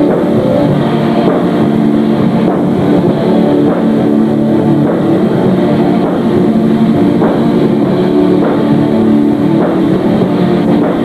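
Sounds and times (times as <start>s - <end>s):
distorted electric guitars droning: 0.0s - 11.0s.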